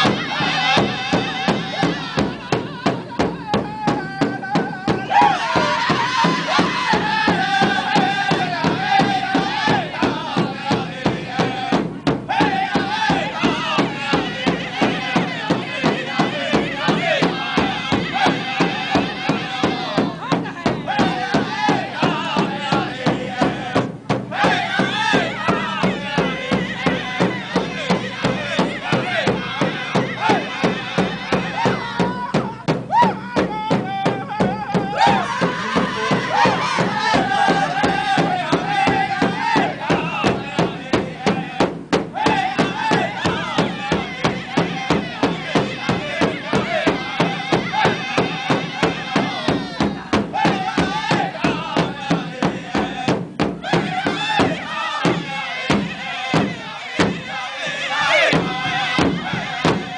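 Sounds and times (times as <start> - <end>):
large drum steady beat: 0.0 - 59.9
men singing in unison: 0.0 - 59.9.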